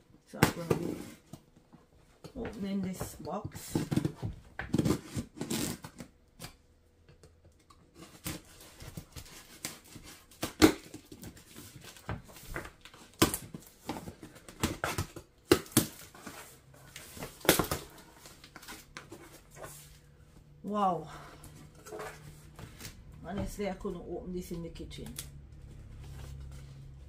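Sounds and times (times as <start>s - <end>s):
cardboard rustling and scraping: 3.6s - 6.1s, 7.9s - 20.4s, 21.4s - 23.7s, 25.6s - 27.0s
knife cutting packing tape: 4.7s - 6.6s.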